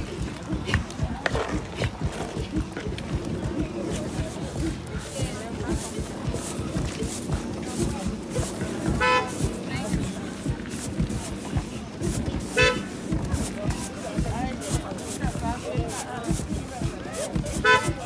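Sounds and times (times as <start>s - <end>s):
crowd chatter: 0.0s - 18.0s
pestles pounding in wooden mortars: 0.0s - 18.0s
short honking toot: 8.9s - 9.5s, 12.5s - 12.9s, 17.6s - 18.0s.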